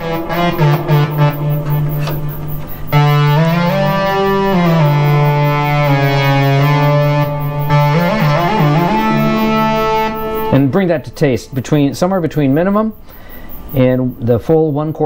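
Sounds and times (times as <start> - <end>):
buzzy synthesizer notes sliding: 0.0 - 12.9.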